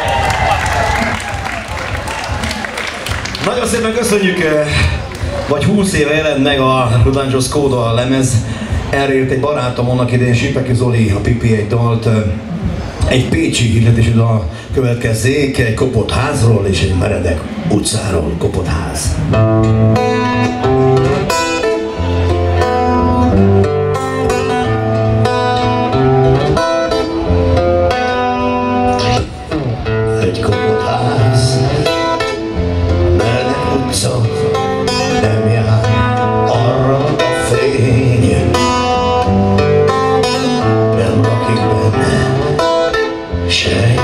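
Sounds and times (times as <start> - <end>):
picked acoustic-electric guitar: 3.0 - 17.8, 18.4 - 44.0
live band music: 18.3 - 44.0.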